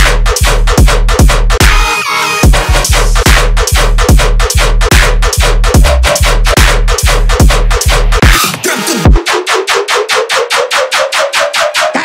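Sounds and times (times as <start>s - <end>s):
rapid repeated synth stab: 0.0s - 12.0s.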